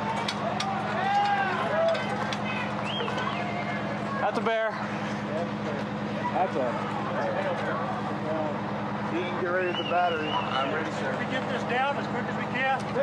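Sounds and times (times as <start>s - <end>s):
people chattering: 0.0s - 13.0s
truck engine running: 0.0s - 13.0s.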